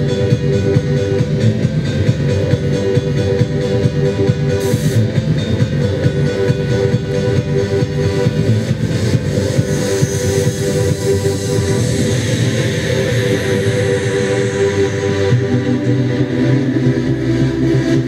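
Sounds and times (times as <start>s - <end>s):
electronic music: 0.0s - 18.0s.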